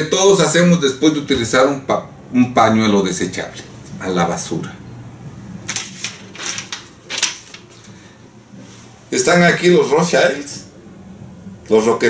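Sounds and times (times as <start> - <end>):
paper rustling: 5.7 - 8.1.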